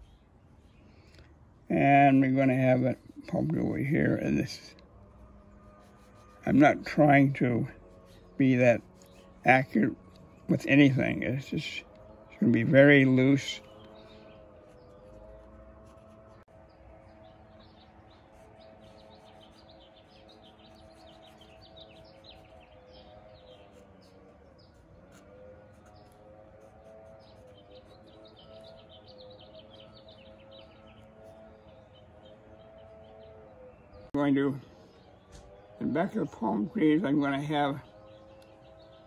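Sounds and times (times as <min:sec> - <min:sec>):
small birds chirping: 0:05.6 - 0:16.5, 0:17.1 - 0:39.0.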